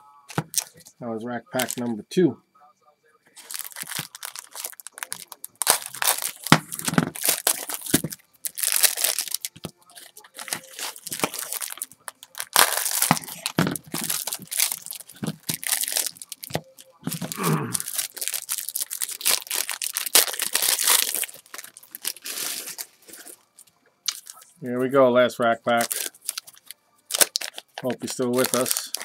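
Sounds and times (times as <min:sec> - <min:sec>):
plastic wrapping crinkling and tearing: 0:00.3 - 0:00.9, 0:01.6 - 0:01.9, 0:03.4 - 0:24.6, 0:25.6 - 0:29.0.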